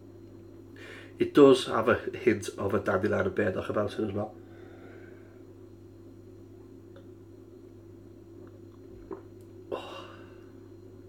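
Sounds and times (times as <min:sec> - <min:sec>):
steady low hum: 0:00.0 - 0:11.0
man sipping from a glass: 0:08.4 - 0:09.4
swallowing sounds: 0:08.4 - 0:09.5.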